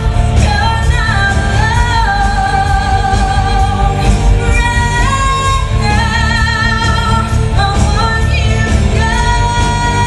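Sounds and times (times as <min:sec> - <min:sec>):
band accompaniment: 0:00.0 - 0:10.0
woman singing with vibrato: 0:00.0 - 0:10.0.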